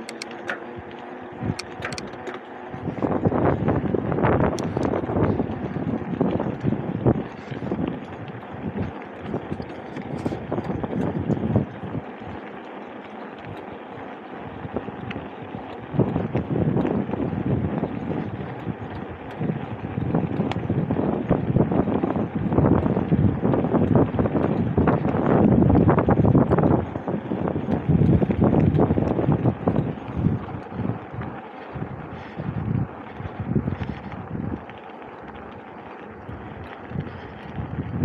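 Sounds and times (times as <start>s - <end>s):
wind buffeting microphone: 0.0s - 12.4s, 14.4s - 38.0s
bike tyre rumble on pavement: 0.0s - 38.0s.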